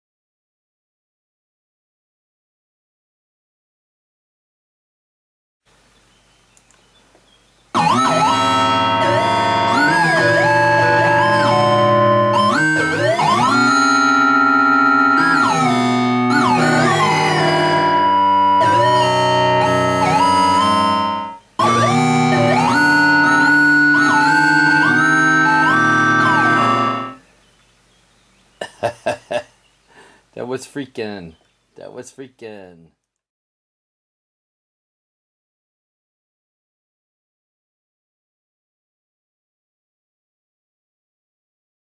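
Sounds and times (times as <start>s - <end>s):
layered gliding synth lines: 7.8s - 27.2s.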